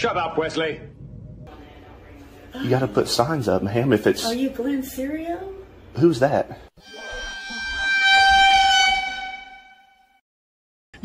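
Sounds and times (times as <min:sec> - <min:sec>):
steady horn-like tone: 0:06.8 - 0:10.2.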